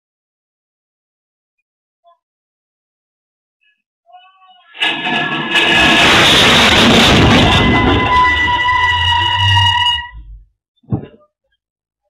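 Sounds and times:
car crashing into tables: 4.8s - 10.0s
high wavering cries: 7.0s - 10.3s.

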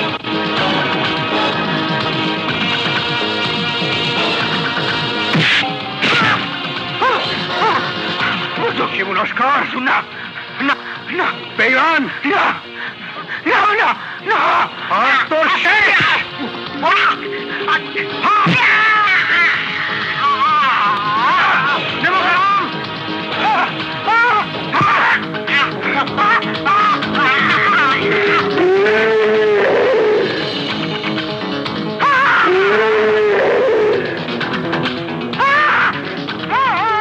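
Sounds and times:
film background score: 0.0s - 37.0s
man yelping: 6.0s - 7.9s, 13.4s - 30.4s, 32.0s - 34.2s, 35.4s - 37.0s.

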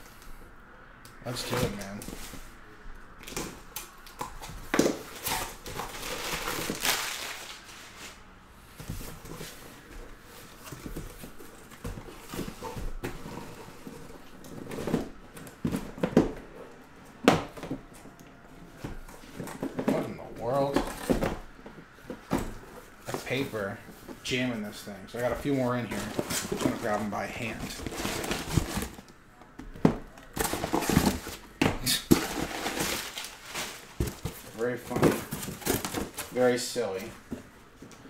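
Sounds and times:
cardboard and tape tearing: 3.3s - 8.2s, 25.8s - 29.1s, 30.2s - 36.4s
boxes knocking when set down: 18.8s - 23.2s, 25.2s - 29.0s, 29.6s - 36.3s.

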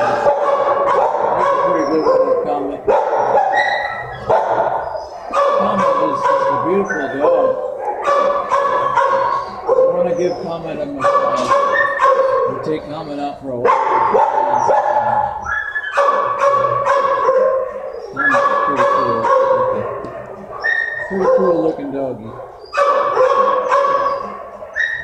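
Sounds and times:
dogs barking with echo: 0.0s - 25.0s.

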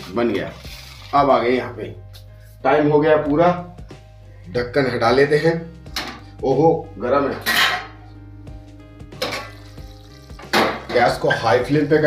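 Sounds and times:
curry sizzling in a pan: 0.0s - 1.5s, 9.2s - 10.9s
metal lid clinking: 7.4s - 8.0s.

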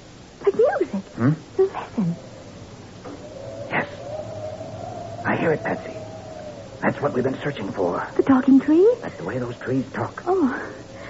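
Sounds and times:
thin wavering musical tone: 0.6s - 11.0s.

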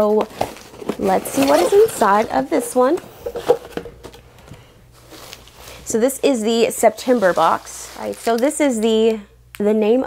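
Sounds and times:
cardboard box rustling: 0.2s - 3.9s.

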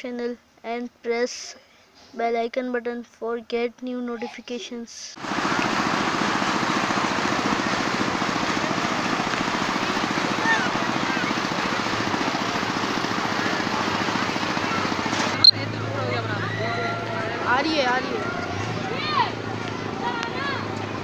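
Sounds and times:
motor running with fast pulse: 5.2s - 18.0s.

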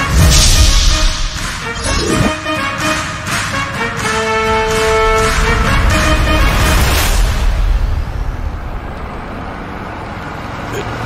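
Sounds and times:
film music held tones: 0.0s - 11.0s
low vehicle engine rumble: 5.4s - 11.0s.

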